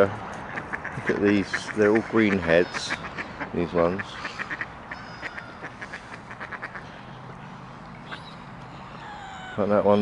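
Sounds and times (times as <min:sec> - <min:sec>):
ducks quacking: 0:00.4 - 0:10.0.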